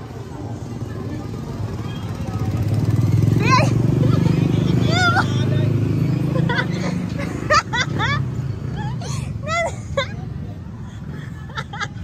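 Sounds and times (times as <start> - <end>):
faint voices: 0.0 - 7.7
small motorcycle engine: 1.5 - 6.5.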